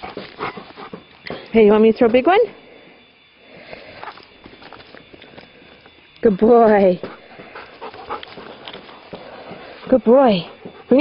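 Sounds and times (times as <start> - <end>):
dog panting: 0.0 - 1.3, 7.0 - 11.0.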